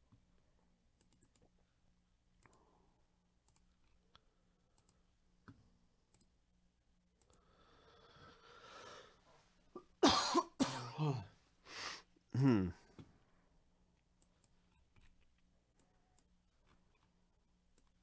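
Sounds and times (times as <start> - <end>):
computer mouse clicks: 1.0 - 1.5, 3.4 - 6.3
person coughing loudly: 9.8 - 11.3.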